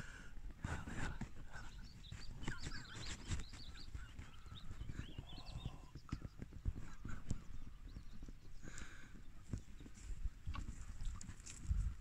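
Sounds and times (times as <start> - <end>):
cow hooves thudding on ground: 0.0 - 12.0
bird chirps: 1.5 - 10.0.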